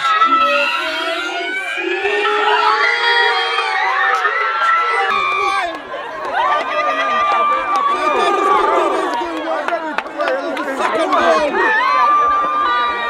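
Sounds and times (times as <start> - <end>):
children cheering and shouting: 0.0 - 9.6, 10.8 - 13.0.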